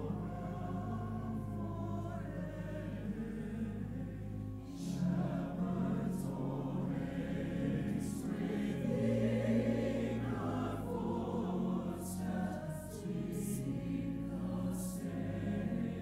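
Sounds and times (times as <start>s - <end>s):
mixed choir singing: 0.0s - 16.0s.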